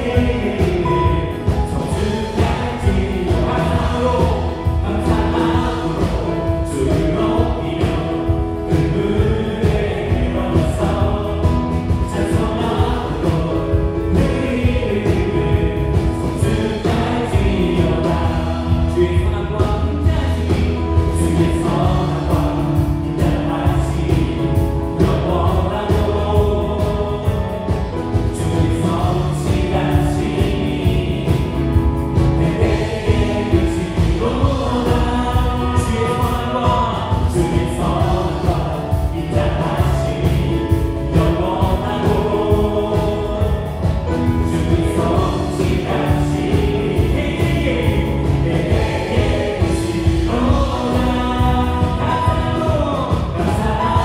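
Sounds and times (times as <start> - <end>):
bass guitar: 0.0 - 54.0
drum kit: 0.0 - 54.0
keyboards: 0.0 - 54.0
voices singing: 0.0 - 54.0.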